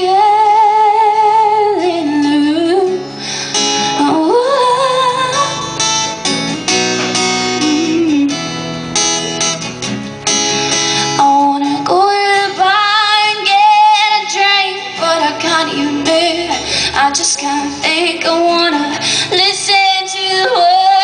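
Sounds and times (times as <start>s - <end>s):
woman singing: 0.0s - 3.2s, 3.8s - 6.7s, 7.4s - 8.6s, 11.1s - 21.0s
acoustic guitar strumming: 0.0s - 21.0s.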